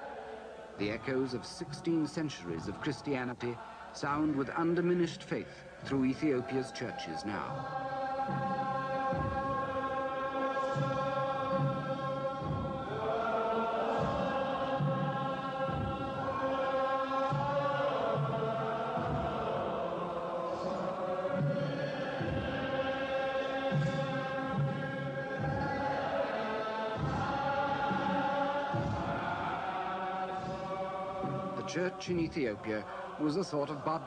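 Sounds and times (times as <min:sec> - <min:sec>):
voices chanting long notes: 0:00.0 - 0:34.0.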